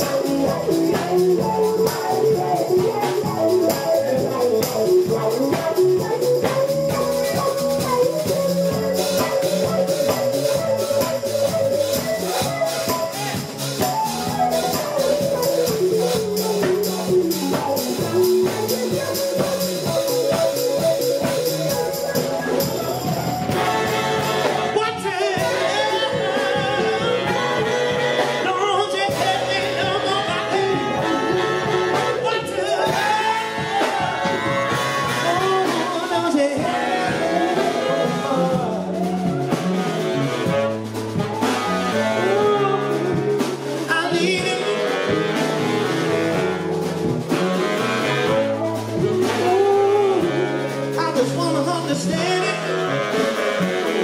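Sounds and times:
man singing: 0.0s - 46.2s, 48.0s - 54.0s
drum kit: 0.0s - 54.0s
electric bass: 0.0s - 54.0s
keyboard: 0.0s - 54.0s
saxophone: 0.0s - 54.0s.

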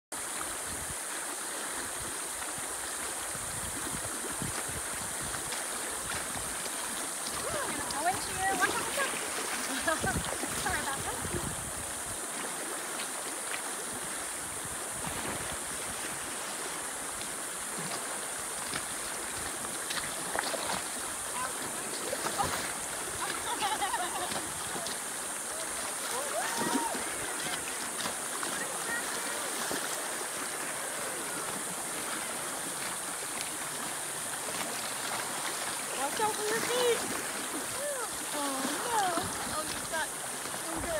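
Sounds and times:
paddle splashes: 0.2s - 40.9s
river rushing over rocks: 0.2s - 40.9s.

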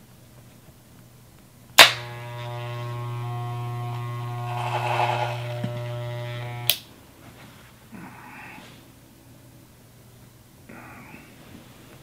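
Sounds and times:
hair clippers buzzing: 1.8s - 6.9s
hair clippers switch click: 1.8s - 6.9s.

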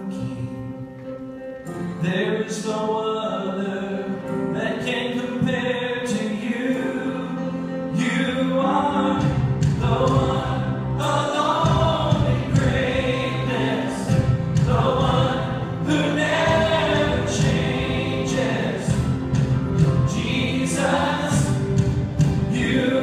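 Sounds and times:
instrumental backing: 0.0s - 23.0s
choir singing worship song: 4.5s - 23.0s.

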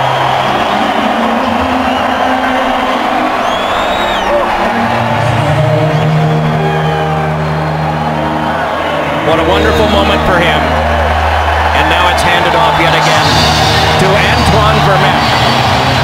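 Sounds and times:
crowd cheering: 0.0s - 16.0s
music over sound system: 0.0s - 16.0s
whistles: 1.6s - 4.6s.

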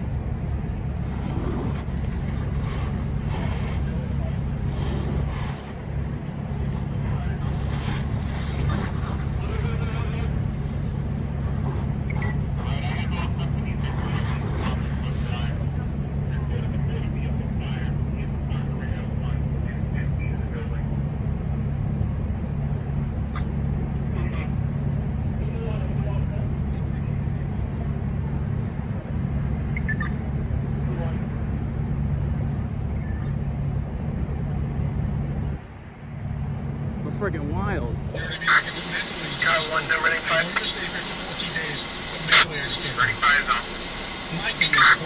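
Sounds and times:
low mechanical hum: 0.0s - 45.0s
faint indistinct voices: 2.6s - 10.8s, 11.6s - 21.2s, 37.9s - 45.0s.

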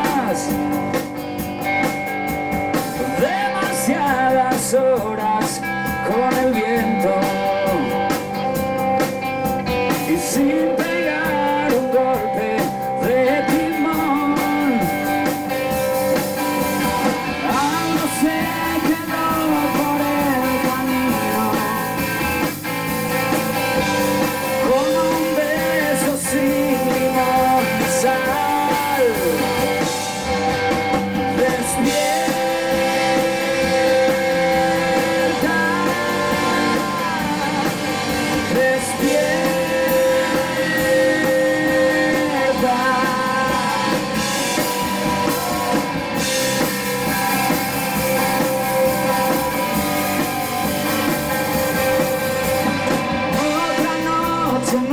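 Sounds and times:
man singing: 0.0s - 1.1s, 2.7s - 54.9s
live rock band playing: 0.0s - 54.9s.

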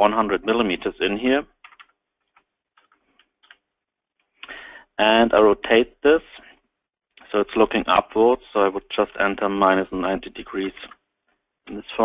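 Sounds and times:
person's voice: 0.0s - 1.5s, 5.0s - 6.5s, 7.2s - 11.0s, 11.6s - 12.0s
computer keyboard clicks: 1.6s - 3.6s.

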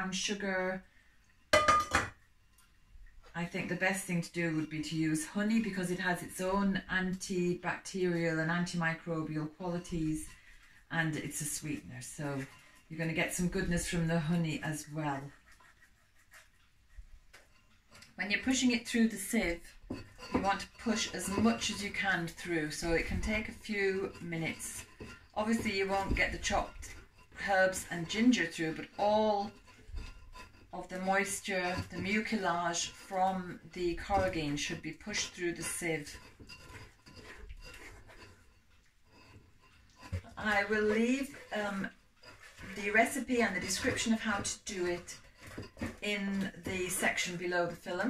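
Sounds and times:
wooden spoon scraping sieve: 3.5s - 48.0s.

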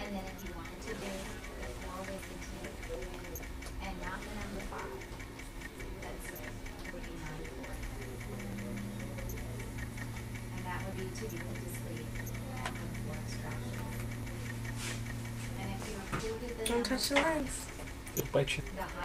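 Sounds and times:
fast even ticking: 0.0s - 19.0s
steady low hum: 0.0s - 19.0s.

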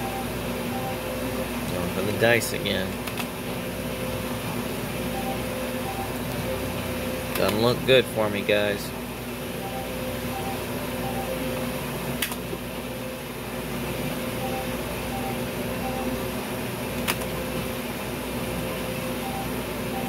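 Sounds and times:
short electronic beeps: 0.0s - 1.0s, 5.1s - 6.2s, 9.6s - 11.5s, 14.4s - 16.2s, 19.2s - 20.0s
machine hum: 0.0s - 20.0s.

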